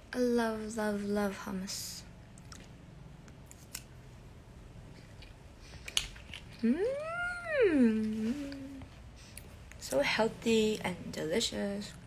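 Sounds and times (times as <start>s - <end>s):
low steady hum: 0.0s - 12.0s
food being chewed: 2.2s - 3.9s, 4.8s - 6.6s.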